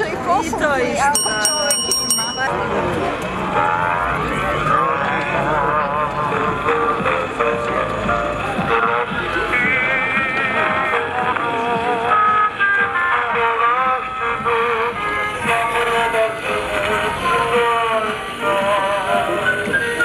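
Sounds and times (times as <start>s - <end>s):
old gramophone record music: 3.1s - 20.0s.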